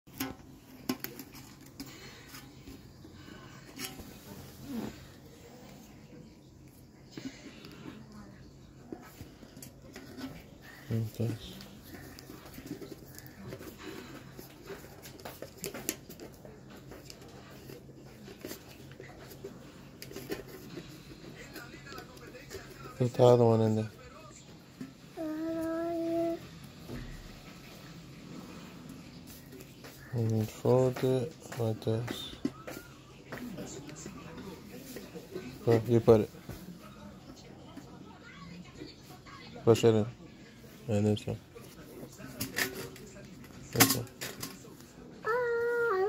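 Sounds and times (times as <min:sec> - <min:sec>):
faint voice: 0:24.0 - 0:27.2, 0:44.3 - 0:46.0.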